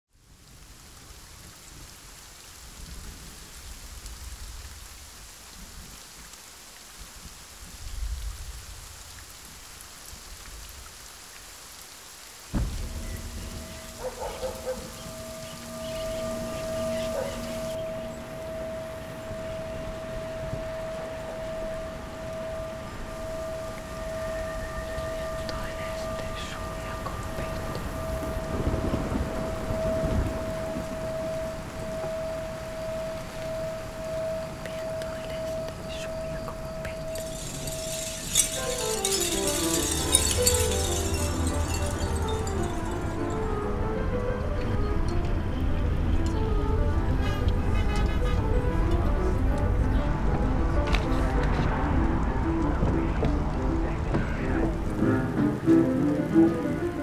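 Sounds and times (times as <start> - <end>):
rain-like hiss: 0.1 - 57.0
sudden hit: 12.5 - 15.8
thunder rumbling: 12.5 - 35.9, 36.5 - 44.2
steady high tone: 12.8 - 28.3, 37.0 - 43.8.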